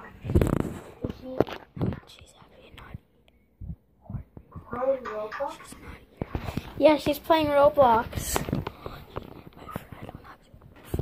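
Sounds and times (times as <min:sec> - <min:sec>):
faint whispering voice: 0:00.0 - 0:07.1, 0:07.9 - 0:11.0.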